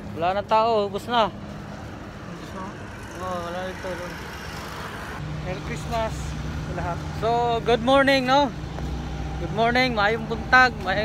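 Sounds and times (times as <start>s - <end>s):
idling motor vehicles rumble: 0.0s - 11.0s.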